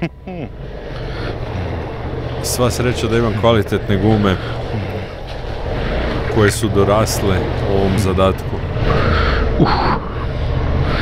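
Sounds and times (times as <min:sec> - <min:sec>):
motorcycle engine under load: 0:00.0 - 0:09.6
tyres through deep gravel: 0:00.5 - 0:09.6.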